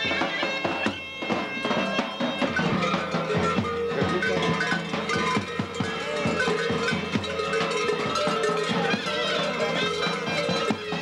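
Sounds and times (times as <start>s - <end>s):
large metal bells clanging: 0.0s - 11.0s.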